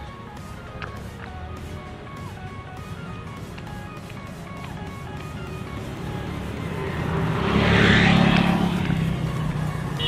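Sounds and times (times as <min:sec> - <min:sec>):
vehicle passing by: 0:04.5 - 0:10.0.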